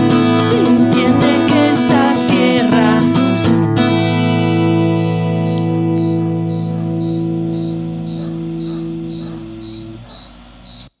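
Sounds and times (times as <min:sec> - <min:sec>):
acoustic guitar chord ringing: 0:00.0 - 0:10.0
faint high-pitched chirp: 0:05.9 - 0:11.0.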